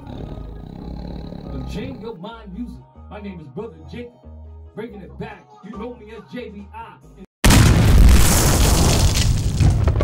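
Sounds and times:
explosion-like boom: 0:07.4 - 0:10.0.

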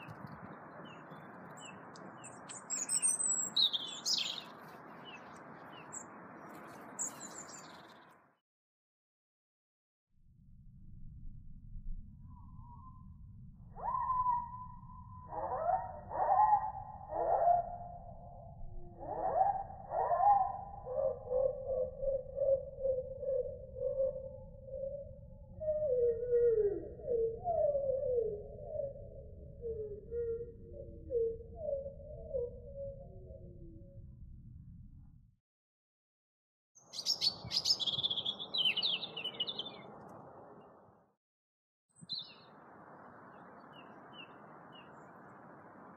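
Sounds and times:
faint outdoor background noise: 0:00.0 - 0:08.4, 0:36.8 - 0:41.1, 0:41.9 - 0:45.9
bird chirping high calls: 0:00.8 - 0:08.0, 0:36.8 - 0:39.9, 0:42.0 - 0:42.5.

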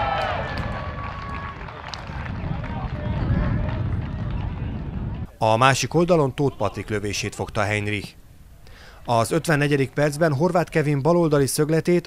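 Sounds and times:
players shouting and cheering: 0:00.0 - 0:05.2
low outdoor rumble: 0:00.0 - 0:05.4.

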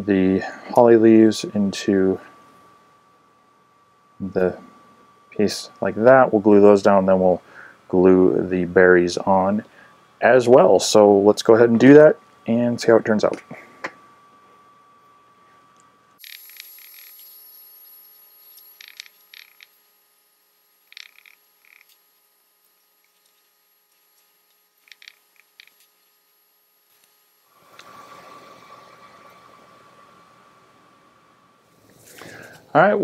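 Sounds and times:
faint room hiss: 0:00.0 - 0:33.0.

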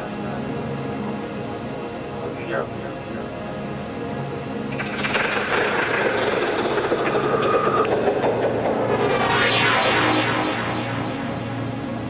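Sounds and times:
psytrance music: 0:03.8 - 0:12.0.

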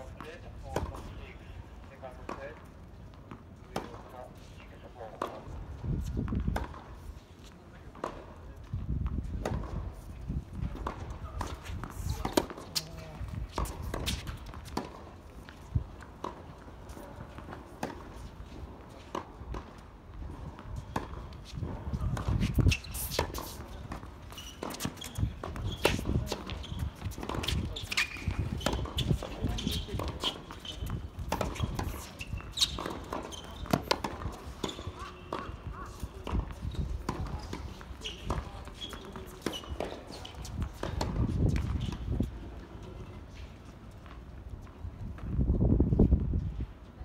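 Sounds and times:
players' footsteps: 0:00.0 - 0:45.4
tennis ball struck and bouncing: 0:09.0 - 0:10.0, 0:10.6 - 0:42.1.

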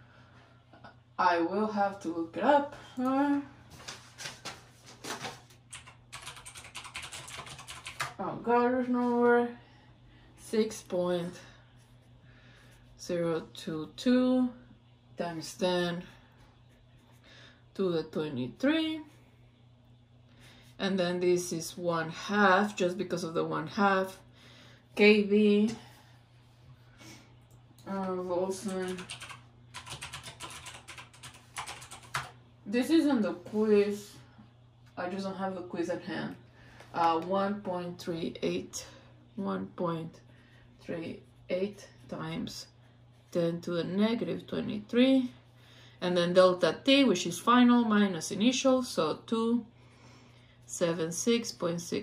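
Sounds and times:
typing on computer keyboard: 0:05.7 - 0:08.2, 0:28.6 - 0:32.4.

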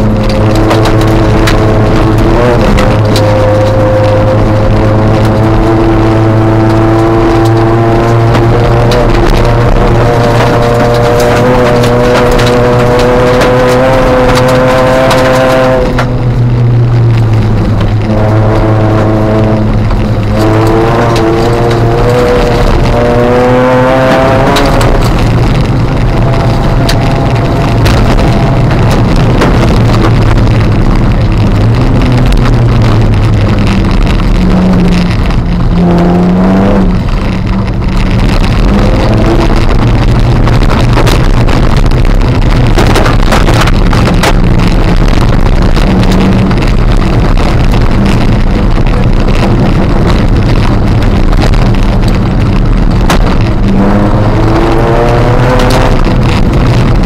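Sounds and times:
car engine revving: 0:00.0 - 0:57.0
tyres on wet gravel rushing: 0:00.0 - 0:57.0.

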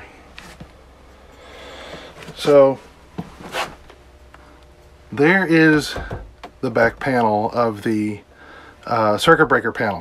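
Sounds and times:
soft rustle: 0:02.2 - 0:03.9.

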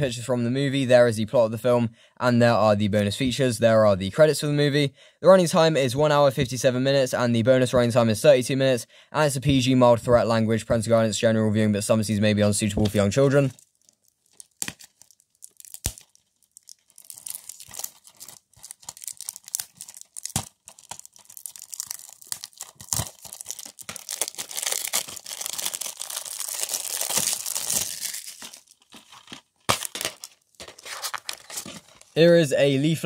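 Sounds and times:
plastic wrap crackling and tearing: 0:13.4 - 0:32.2.

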